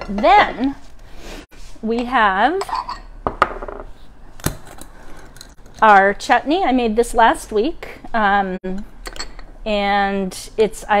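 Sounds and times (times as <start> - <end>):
dishes clinking on a countertop: 2.6 - 3.8.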